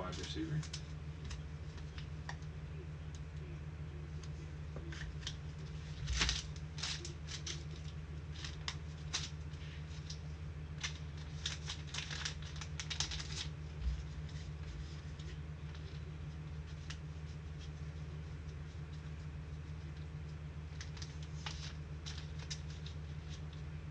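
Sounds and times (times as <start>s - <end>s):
hands handling foil card packs: 0.0s - 2.5s, 4.2s - 23.9s
steady low hum: 0.0s - 23.9s.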